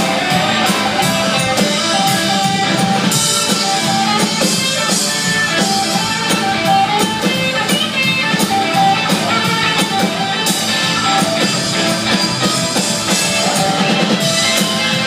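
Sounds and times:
drum kit: 0.0s - 15.0s
electric guitar: 0.0s - 15.0s
keyboard: 0.0s - 15.0s.

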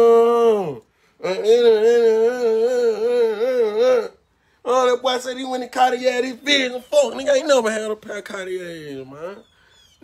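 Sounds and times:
man singing a long note: 0.0s - 4.2s.

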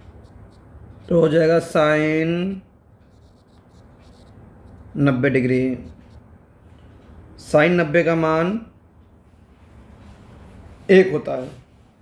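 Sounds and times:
stylus scratching on tablet: 0.0s - 6.5s.

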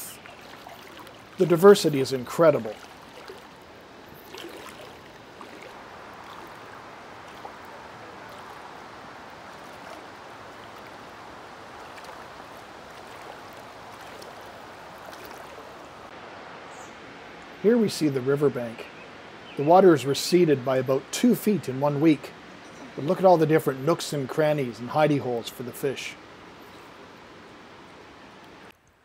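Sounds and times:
shallow river flowing: 0.0s - 29.0s.

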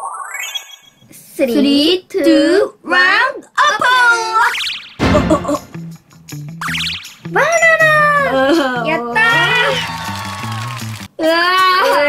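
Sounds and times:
background music with bass line: 5.0s - 11.1s.

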